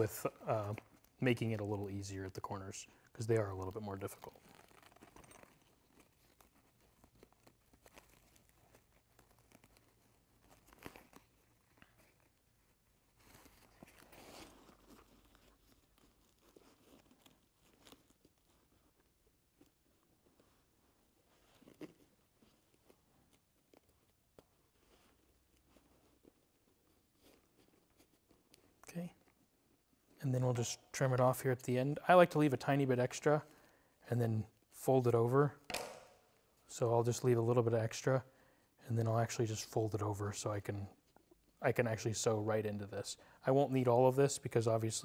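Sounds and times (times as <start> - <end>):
rustling of nylon fabric: 0.0 - 30.2.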